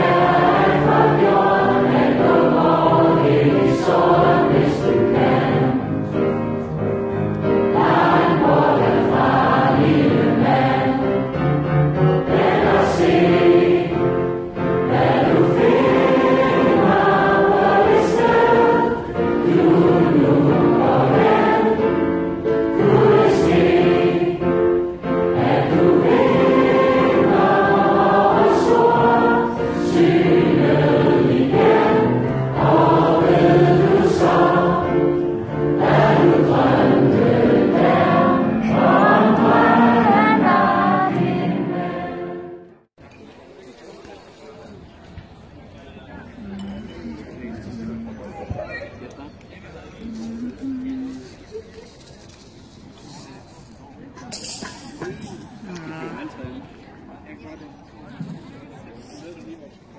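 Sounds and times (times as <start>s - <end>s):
crowd singing together: 0.0s - 6.4s, 7.4s - 42.9s.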